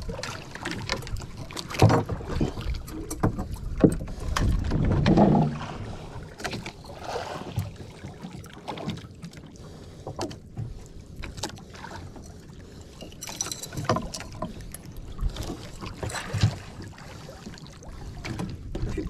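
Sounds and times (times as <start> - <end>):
water against boat hull: 0.0 - 19.0.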